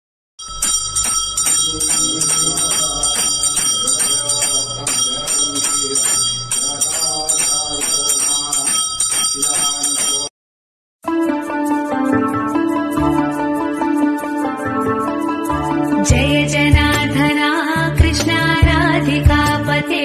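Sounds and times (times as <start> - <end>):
bells ringing rapidly: 0.4 - 10.3
voices: 0.6 - 10.3.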